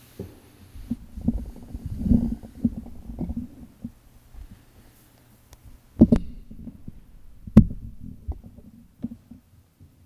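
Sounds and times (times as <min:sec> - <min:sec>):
muffled thumps on wooden lectern: 0:06.0 - 0:09.2.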